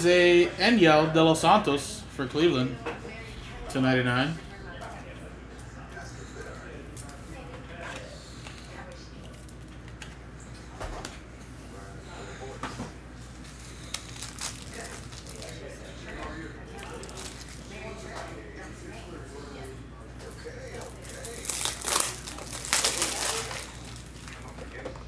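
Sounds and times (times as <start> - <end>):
steady low hum: 0.0 - 25.0
faint background voices: 2.7 - 25.0
packaging clicks and rustles: 13.6 - 15.6, 16.8 - 17.7, 20.7 - 24.8.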